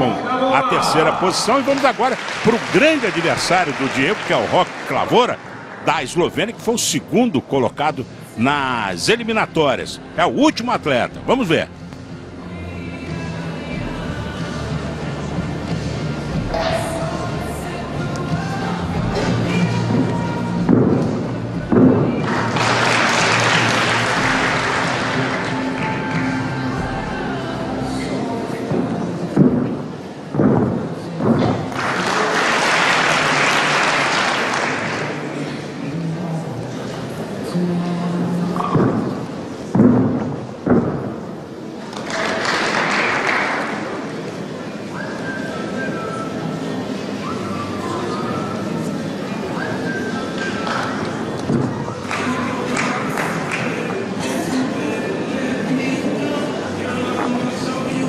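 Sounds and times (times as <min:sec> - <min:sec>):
crowd cheering and applause: 0:00.0 - 0:06.5, 0:22.2 - 0:27.0, 0:31.7 - 0:35.2
arena music: 0:00.0 - 0:28.5.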